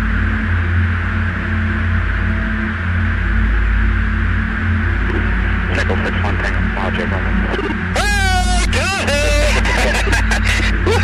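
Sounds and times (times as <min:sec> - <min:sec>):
jet cockpit hum: 0:00.0 - 0:11.0
voices over intercom: 0:05.7 - 0:10.0.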